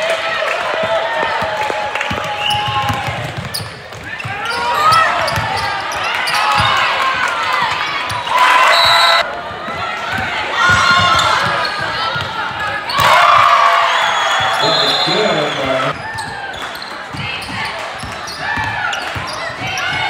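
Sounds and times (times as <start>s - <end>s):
spectators shouting and cheering: 0.0s - 20.0s.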